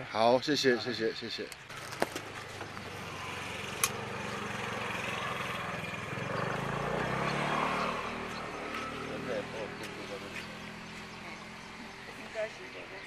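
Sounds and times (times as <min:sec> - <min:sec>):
vehicle engine passing: 0:02.3 - 0:13.0.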